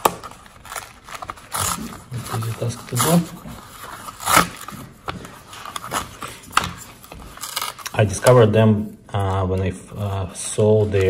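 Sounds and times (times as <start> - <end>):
cardboard envelope ripping: 0.0 - 8.4.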